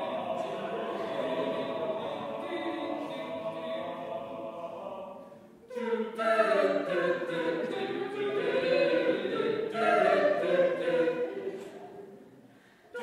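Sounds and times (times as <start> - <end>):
a cappella group singing in harmony: 0.0 - 13.0.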